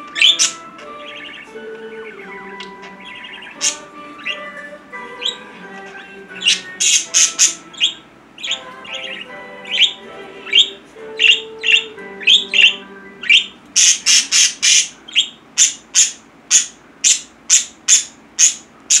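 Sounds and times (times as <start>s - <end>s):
budgerigars chirping: 0.0s - 19.0s.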